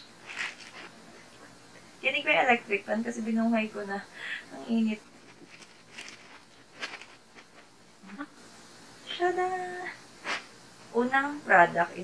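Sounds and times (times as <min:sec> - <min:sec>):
plastic packaging rustling: 0:00.2 - 0:01.0, 0:04.9 - 0:07.8.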